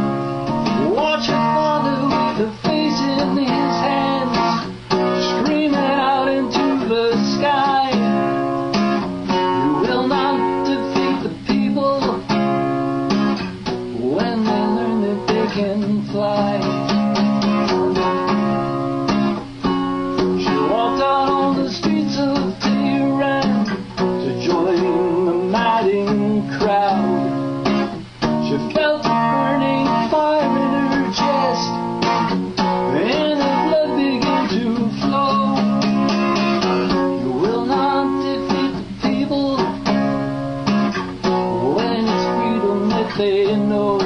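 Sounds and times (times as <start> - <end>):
acoustic guitar strumming: 0.0 - 44.0
man singing a slow ballad: 0.6 - 8.4, 9.3 - 12.4, 13.9 - 17.0, 20.4 - 27.5, 28.4 - 32.0, 32.8 - 36.0, 36.8 - 40.2, 41.5 - 44.0.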